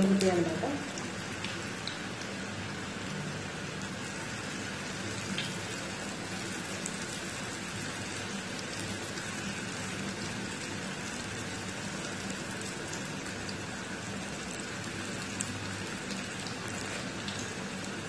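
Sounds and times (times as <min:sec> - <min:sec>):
food deep-frying in oil: 0:00.0 - 0:18.0.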